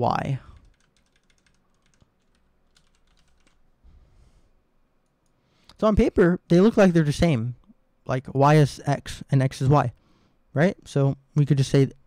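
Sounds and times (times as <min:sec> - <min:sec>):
keyboard typing: 0:00.6 - 0:03.6.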